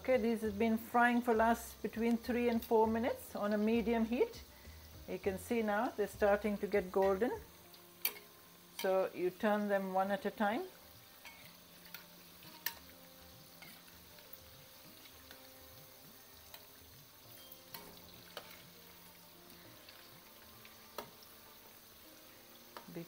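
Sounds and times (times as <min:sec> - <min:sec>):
oil sizzling: 0:00.0 - 0:23.0
metal spoon clicking on pan: 0:08.0 - 0:09.0, 0:11.2 - 0:12.9, 0:17.5 - 0:18.6.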